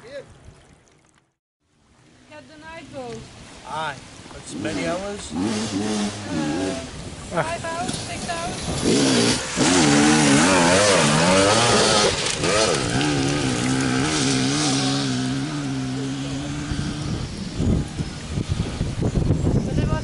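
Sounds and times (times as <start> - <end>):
motorcycle engine revving: 4.4 - 19.4.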